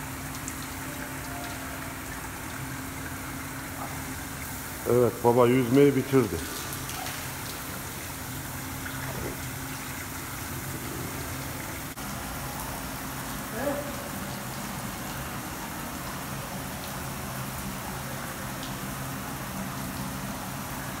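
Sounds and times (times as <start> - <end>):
pool machinery hum: 0.0 - 21.0.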